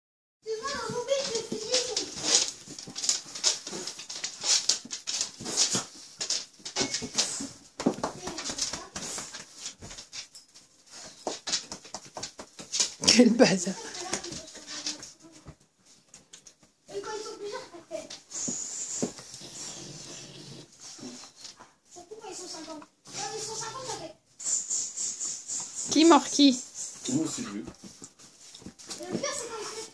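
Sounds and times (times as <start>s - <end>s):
pets hissing breaths: 18.0s - 21.9s, 23.0s - 29.9s.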